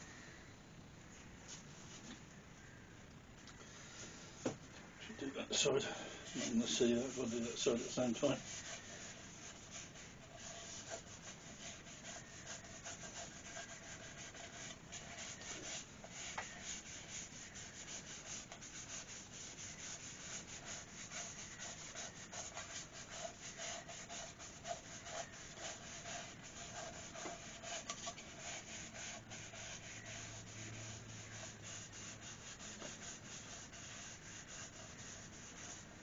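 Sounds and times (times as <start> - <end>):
faint steady hum: 0.0 - 36.0
hand rubbing wood: 5.6 - 36.0.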